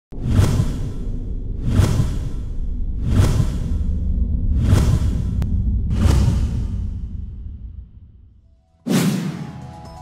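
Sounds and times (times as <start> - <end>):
background music: 8.5 - 10.0.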